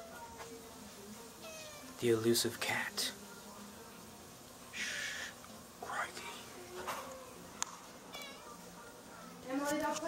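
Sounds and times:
cat meowing: 1.4s - 2.0s, 8.1s - 8.6s.

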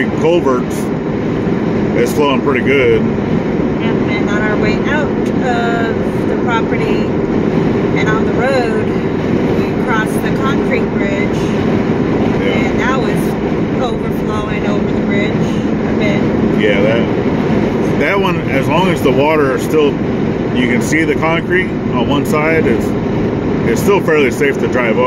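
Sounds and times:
people talking: 0.0s - 0.9s, 2.0s - 3.1s, 3.8s - 7.2s, 8.0s - 11.6s, 12.4s - 17.2s, 17.8s - 23.0s, 23.6s - 25.0s
low hum: 0.0s - 25.0s
road and engine drone: 0.0s - 25.0s.

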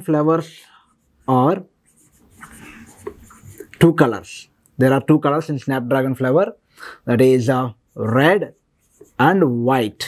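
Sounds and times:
person speaking: 0.0s - 10.0s
marker scratching on a whiteboard: 0.9s - 4.0s, 7.7s - 9.7s.

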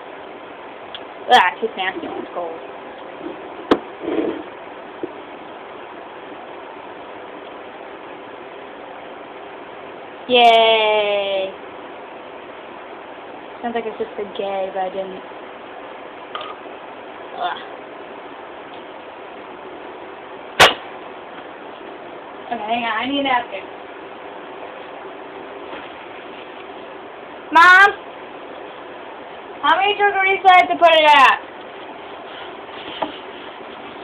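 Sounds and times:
steady low hiss: 0.0s - 34.0s
sharp knock: 20.6s - 20.9s.

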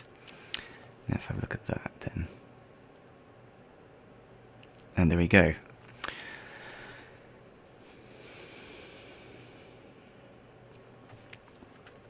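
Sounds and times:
soft hiss: 0.0s - 12.0s
steady low hum: 0.0s - 12.0s.

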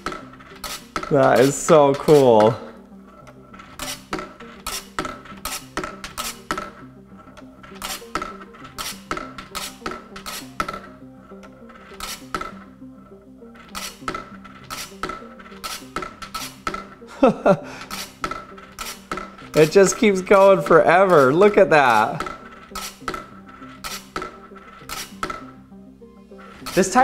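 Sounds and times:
steel ball rolling in metal dish: 0.0s - 17.0s, 17.8s - 25.6s, 26.3s - 27.0s
ball rattling and clinking: 0.0s - 25.7s, 26.4s - 27.0s.

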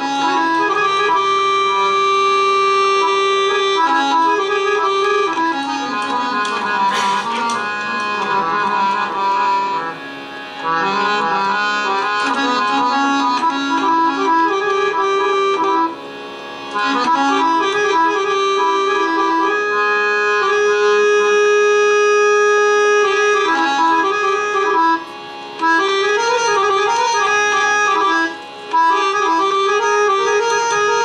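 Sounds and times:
harmonium melody: 0.0s - 31.0s.

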